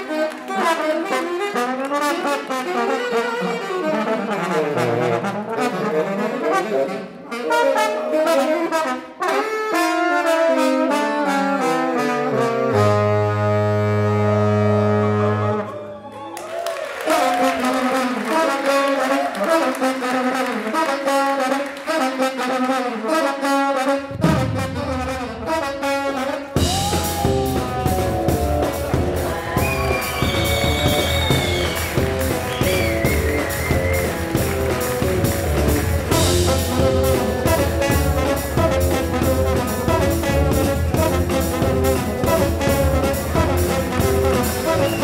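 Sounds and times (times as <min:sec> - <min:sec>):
electric jazz band playing: 0:00.0 - 0:15.7, 0:16.9 - 0:45.0
jazz band holding low note: 0:23.8 - 0:45.0.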